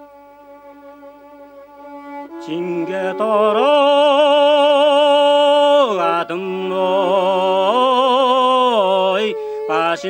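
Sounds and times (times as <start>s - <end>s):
bowed fiddle: 0.0s - 10.0s.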